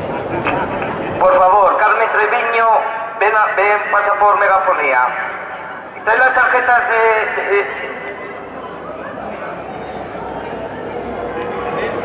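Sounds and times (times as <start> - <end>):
man speaking over public address: 0.0 - 8.5, 11.4 - 12.0
hubbub of indoor sports hall: 0.0 - 12.0.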